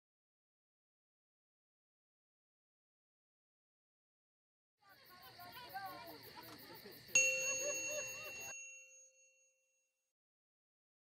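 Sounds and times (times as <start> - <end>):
bell-like chime ding: 7.2 - 9.8.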